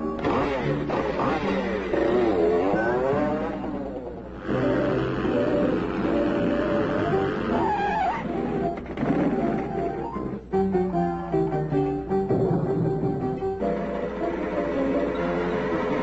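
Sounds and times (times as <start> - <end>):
cartoon soundtrack music: 0.0 - 16.0.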